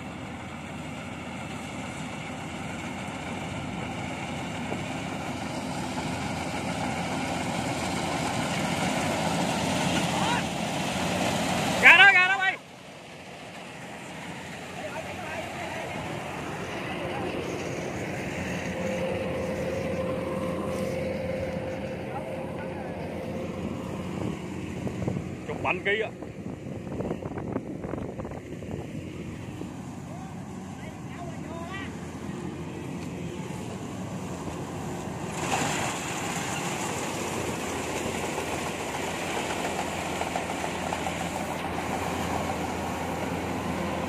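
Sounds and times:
combine harvester engine running: 0.0s - 44.0s.

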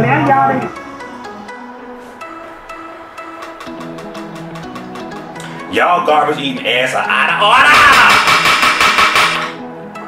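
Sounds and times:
background music: 0.0s - 10.0s
gavel strikes on sound block: 7.7s - 9.6s.

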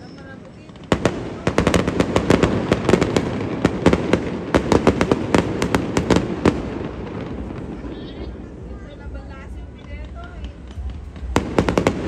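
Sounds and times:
fireworks cracks and bangs: 0.0s - 12.0s.

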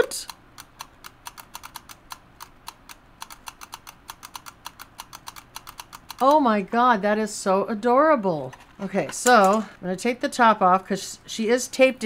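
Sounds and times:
toy mechanism clicking: 0.0s - 6.3s.

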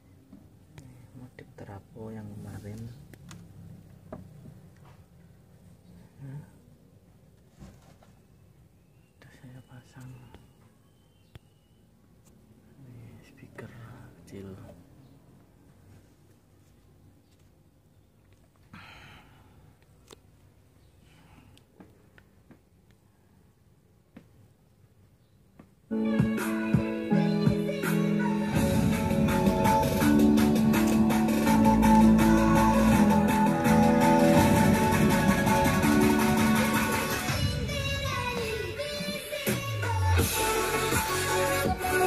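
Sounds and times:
guitar music from speaker: 26.0s - 37.4s.

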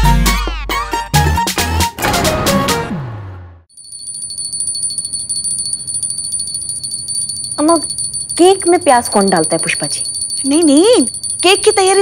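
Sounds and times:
handheld bell ringing rapidly: 3.7s - 12.0s.

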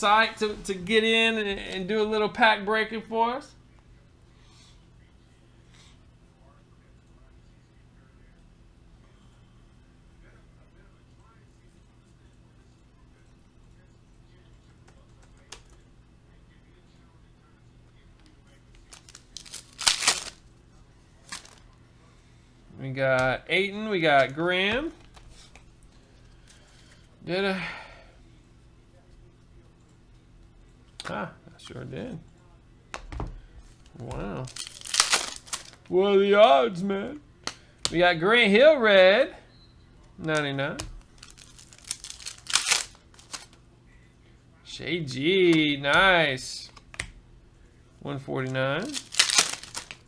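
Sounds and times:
plastic wrapper tearing and crinkling: 18.8s - 20.4s, 21.2s - 21.6s, 34.4s - 35.8s, 41.1s - 43.6s, 48.9s - 50.0s.

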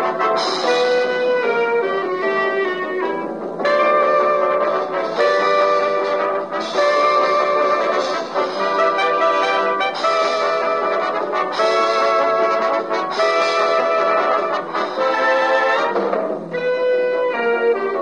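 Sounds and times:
swing band horns playing chords: 0.0s - 18.0s.

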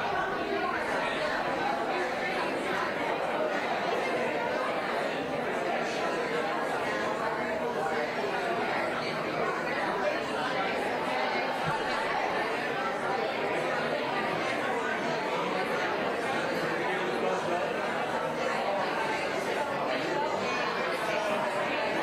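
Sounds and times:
murmur of many voices: 0.0s - 22.0s.

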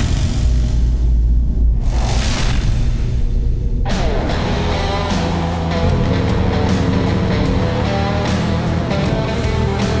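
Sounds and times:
deep low rumble: 0.2s - 8.3s
whoosh: 1.2s - 4.5s.

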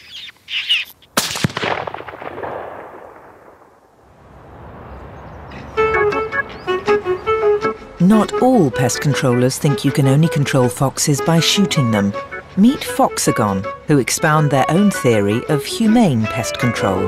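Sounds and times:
rifle shot echoing: 1.2s - 4.0s
music with plucked notes: 5.8s - 17.0s.

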